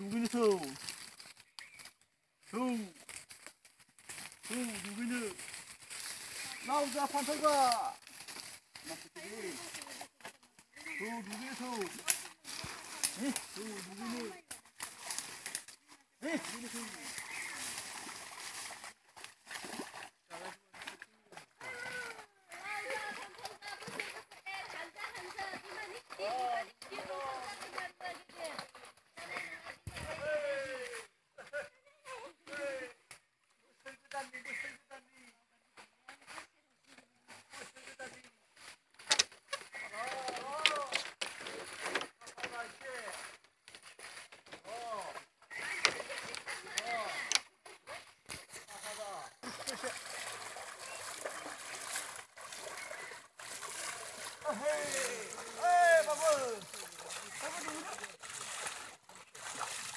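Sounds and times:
water splashing and sloshing: 0.0 - 31.2, 36.2 - 59.9
voices talking and calling out: 0.0 - 59.9.

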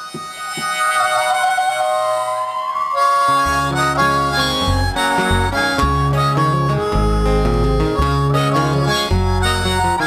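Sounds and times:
harmonica bending held notes: 0.0 - 10.0.

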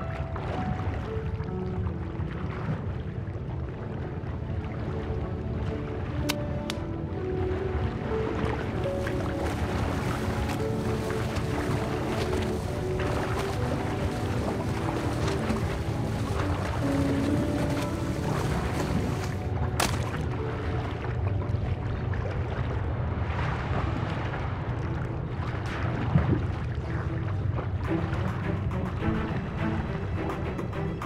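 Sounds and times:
muffled underwater rumble: 0.0 - 30.9
slow background music: 0.0 - 31.0.

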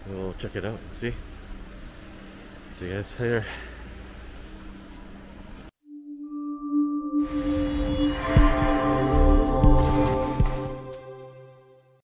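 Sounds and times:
sustained ringing music tone: 5.8 - 11.9.

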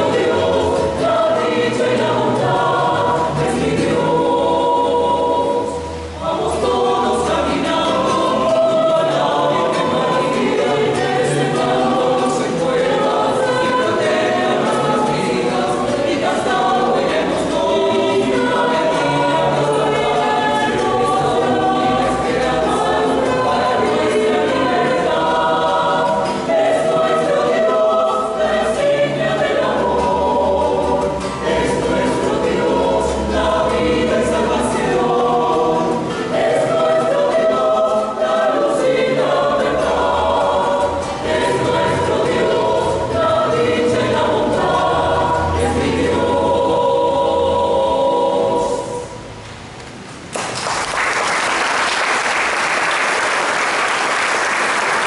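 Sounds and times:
mixed choir singing: 0.0 - 49.6, 51.2 - 55.0.

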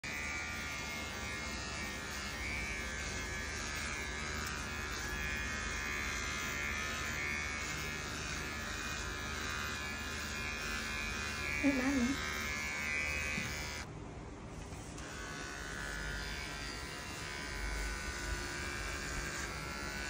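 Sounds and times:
electric hair clipper buzzing: 0.0 - 13.9, 14.8 - 20.0.

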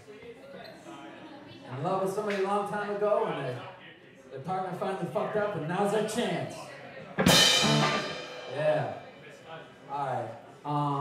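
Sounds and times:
drums and electric guitar hit: 7.2 - 9.0.

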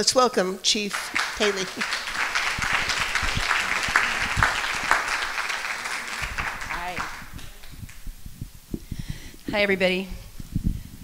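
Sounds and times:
audience applause: 0.9 - 8.1.

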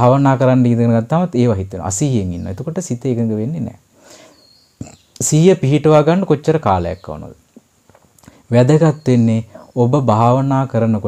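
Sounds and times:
man speaking: 0.0 - 3.8, 4.8 - 7.4, 8.5 - 11.0.

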